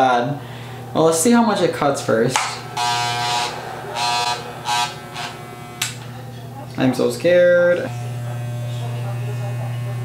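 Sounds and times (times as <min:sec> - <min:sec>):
electric hair clippers buzzing: 0:00.6 - 0:10.0.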